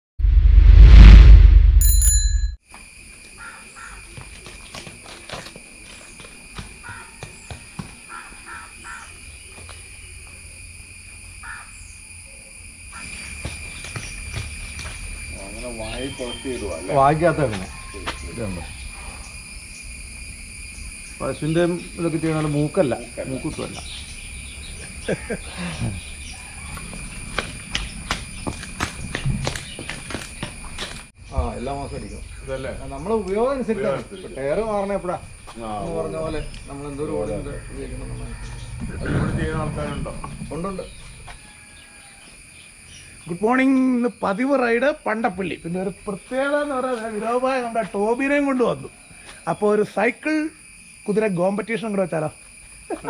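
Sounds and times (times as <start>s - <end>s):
intro sting: 0.2s - 2.3s
bell-like ding: 1.8s - 2.6s
crickets droning: 2.6s - 53.0s
hooves clopping on pavement: 3.8s - 8.6s, 13.0s - 16.3s, 26.4s - 31.2s.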